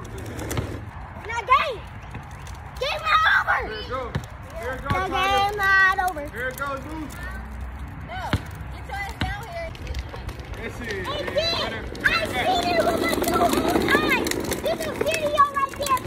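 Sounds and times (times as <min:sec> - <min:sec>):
basketball bouncing on asphalt: 0:00.0 - 0:06.4, 0:07.1 - 0:16.0.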